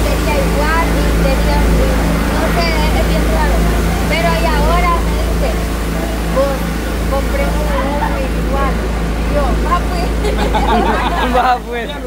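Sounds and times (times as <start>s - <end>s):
low rumble: 0.0s - 11.3s
people talking: 0.0s - 12.0s
people laughing: 9.4s - 12.0s.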